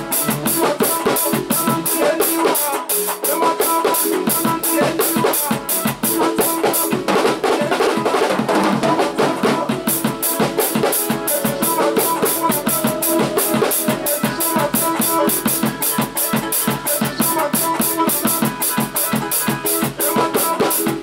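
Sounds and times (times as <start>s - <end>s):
drum kit playing: 0.0s - 21.0s
recorded dance track: 0.0s - 21.0s.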